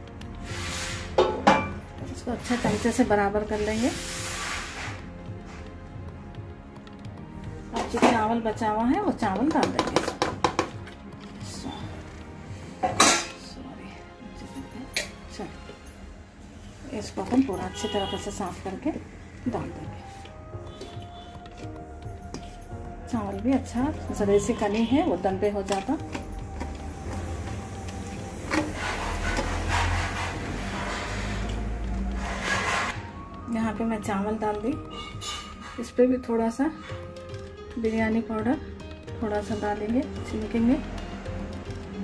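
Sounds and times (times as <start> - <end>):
background music: 0.0 - 42.0
rice scraping in steel pot: 0.4 - 1.2, 2.4 - 5.0, 28.4 - 33.0
steel vessel clanking on pot: 1.2 - 1.8.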